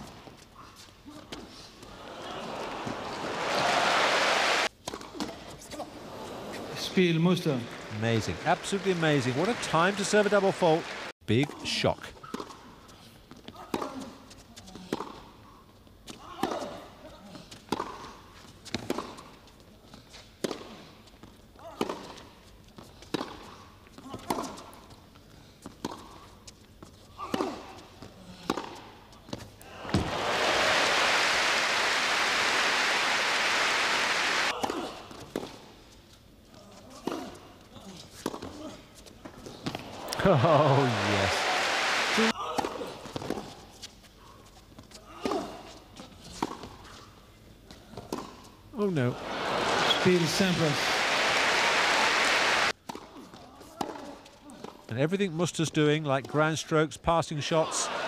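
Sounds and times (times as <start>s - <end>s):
crowd applause: 1.9s - 4.7s, 6.0s - 11.1s, 29.7s - 34.5s, 39.9s - 42.4s, 49.1s - 52.7s
tennis ball hits: 29.8s - 31.1s.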